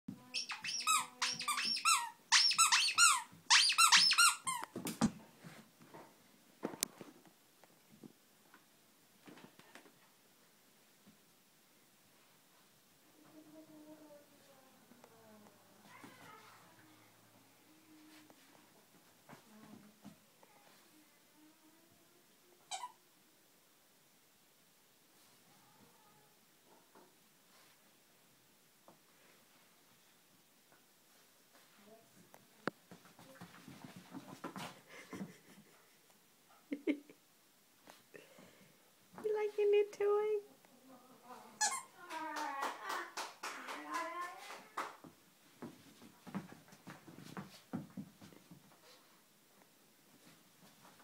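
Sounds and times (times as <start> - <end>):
dog toy squeaker squeaking: 0.3 - 4.6.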